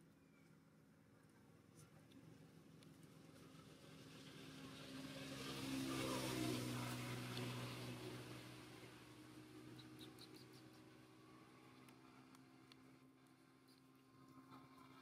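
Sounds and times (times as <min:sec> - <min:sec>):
vehicle engine passing by: 0:03.2 - 0:12.8.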